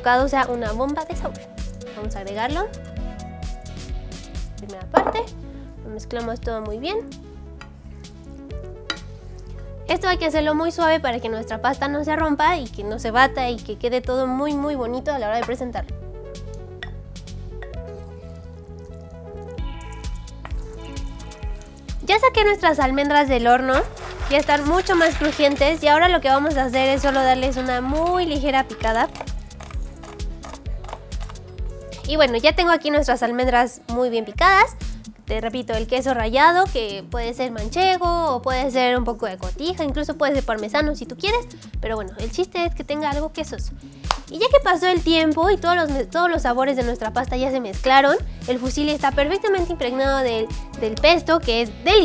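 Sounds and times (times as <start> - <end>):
soft background music: 0.0 - 52.0
light sizzle: 17.8 - 22.1, 23.6 - 26.2
wooden spoon scraping a pan: 23.5 - 28.1.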